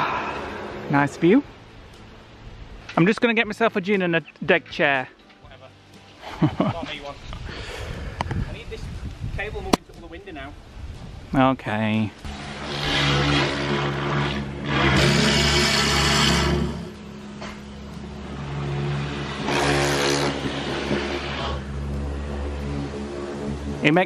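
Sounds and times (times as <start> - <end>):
water jet spraying glass: 12.3 - 16.9.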